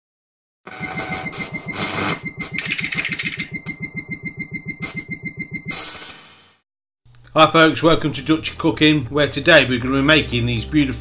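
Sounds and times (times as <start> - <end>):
steady high tone: 0.7 - 5.9.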